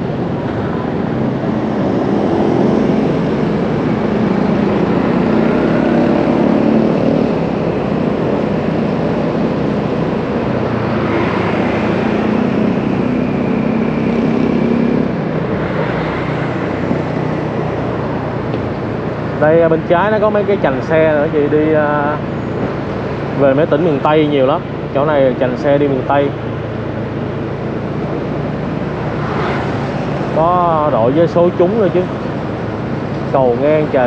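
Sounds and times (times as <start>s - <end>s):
road and wind noise: 0.0s - 34.0s.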